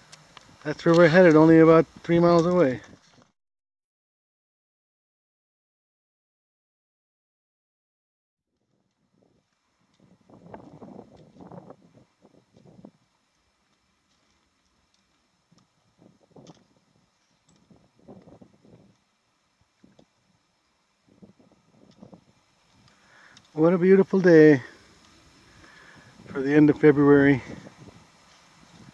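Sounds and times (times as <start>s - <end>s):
stones clicking underfoot: 12.5s - 16.8s
footsteps on gravel: 13.6s - 16.8s.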